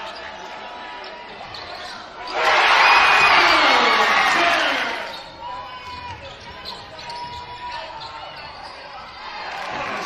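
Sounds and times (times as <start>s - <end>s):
crowd chatter: 0.0s - 10.0s
sneakers squeaking on hardwood: 1.3s - 2.1s, 5.0s - 9.2s
crowd cheering: 2.2s - 6.2s, 9.0s - 10.0s.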